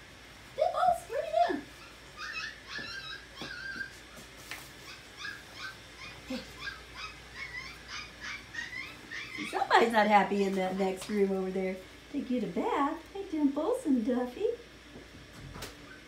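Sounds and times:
puppies whimpering and yipping: 1.5 - 10.0.

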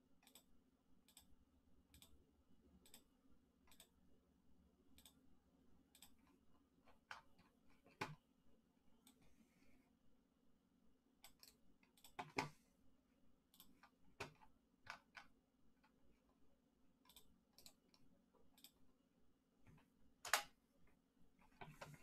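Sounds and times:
mouse and keyboard clicks: 3.7 - 3.9.

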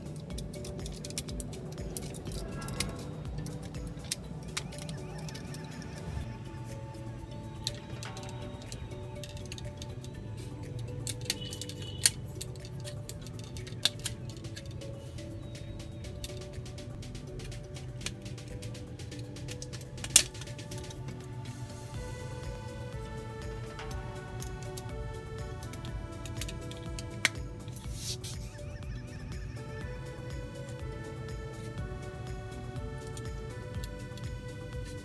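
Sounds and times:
background music: 0.0 - 35.0.

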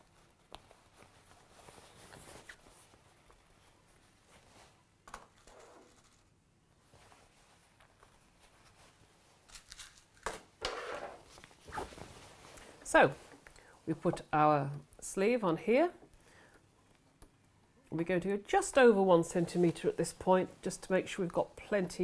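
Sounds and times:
fabric rustling: 0.0 - 5.0, 5.8 - 10.2, 11.0 - 14.0, 18.7 - 22.0.

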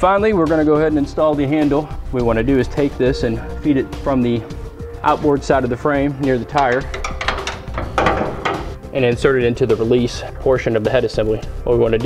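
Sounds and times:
small metal knocks and clicks: 6.6 - 8.8.

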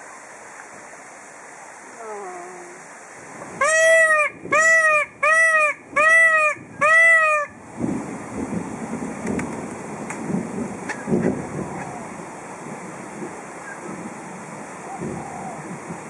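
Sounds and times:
peacock calling loudly: 3.6 - 7.6.

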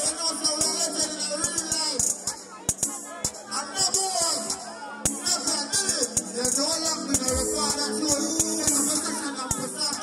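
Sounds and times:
person speaking over microphone: 5.3 - 10.0
drum beat: 7.2 - 7.9.

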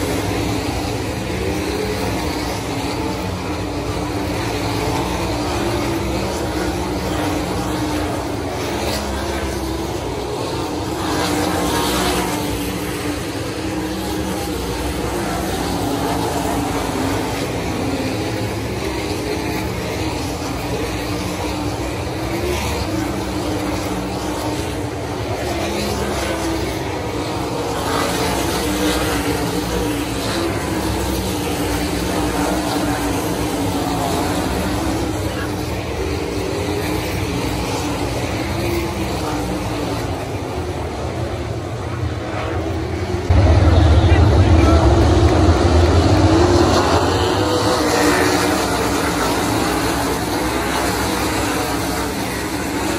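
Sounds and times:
race car engines racing: 0.0 - 52.9.

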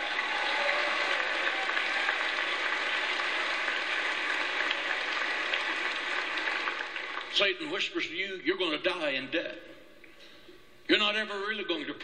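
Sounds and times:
crowd applauding: 0.0 - 7.6.

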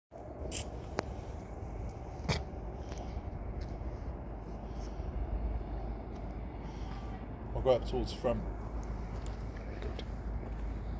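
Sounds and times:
low outdoor rumble: 0.1 - 10.9.

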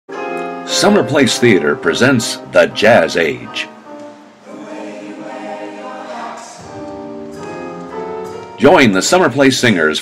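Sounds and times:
choir singing long held notes: 3.1 - 8.5.

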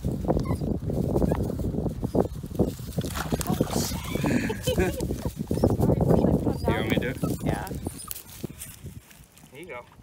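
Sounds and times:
footsteps in dry grass: 0.0 - 10.0
dog whining: 6.5 - 8.2.

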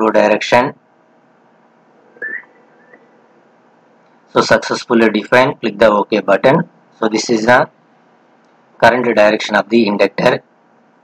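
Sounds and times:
low steady hiss: 0.0 - 11.0
high whistle-like chirp: 2.2 - 3.1.

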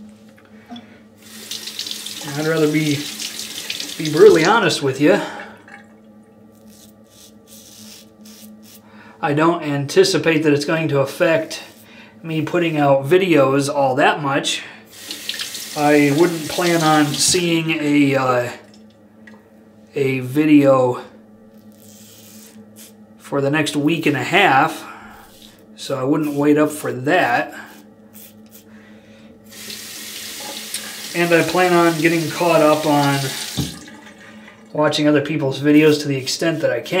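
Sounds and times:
low steady hum: 0.0 - 37.0
razor scraping stubble: 6.6 - 8.9, 21.5 - 23.0, 25.2 - 26.7, 27.6 - 28.7.

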